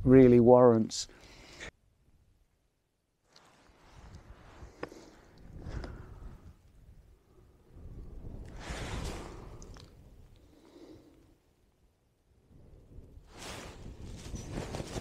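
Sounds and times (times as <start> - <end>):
wind buffeting microphone: 3.9 - 10.4, 12.5 - 15.0
faint clicks: 9.6 - 11.3.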